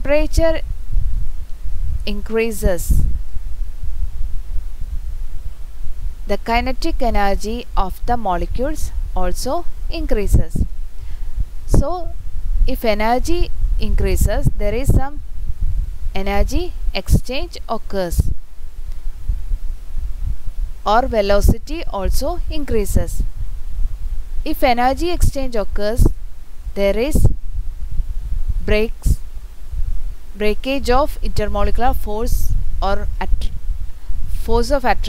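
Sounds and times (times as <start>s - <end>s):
woman narrating: 0.0s - 0.6s, 2.1s - 3.1s, 6.3s - 10.7s, 11.7s - 12.1s, 12.7s - 15.2s, 16.2s - 18.3s, 20.9s - 23.2s, 24.5s - 26.1s, 26.8s - 27.3s, 28.6s - 29.2s, 30.4s - 33.5s, 34.3s - 35.0s
faint hiss: 0.0s - 35.0s
low background rumble: 0.0s - 35.0s.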